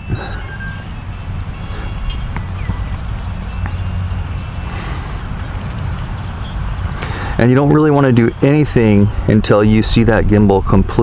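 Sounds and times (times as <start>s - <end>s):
short high electronic beeps: 0.0s - 0.8s, 2.4s - 3.0s.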